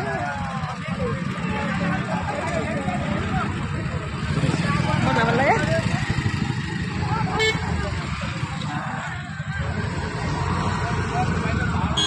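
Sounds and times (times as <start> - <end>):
bystanders talking: 0.0 - 12.0
traffic rumble: 0.0 - 12.0
vehicle horn toot: 7.4 - 7.6.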